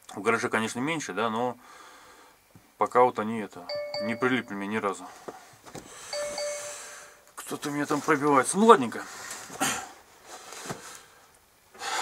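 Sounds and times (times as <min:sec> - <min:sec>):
sharp intake of breath: 0:01.6 - 0:02.4, 0:05.9 - 0:07.2.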